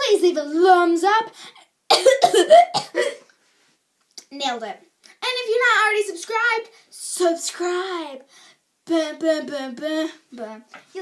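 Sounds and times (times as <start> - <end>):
girl coughing: 1.9 - 3.3.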